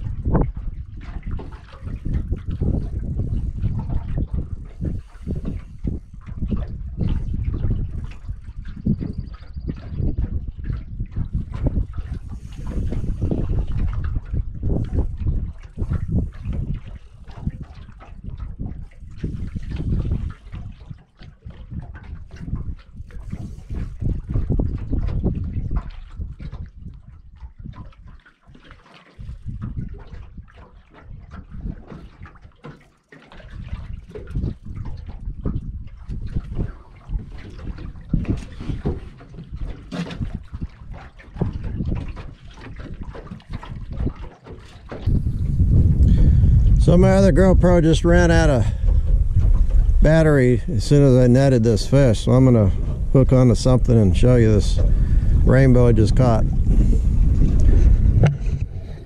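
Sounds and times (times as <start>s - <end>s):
wind gusting over microphone: 0.0s - 28.0s, 29.2s - 32.4s, 33.5s - 59.0s
water trickling and lapping: 0.0s - 59.0s.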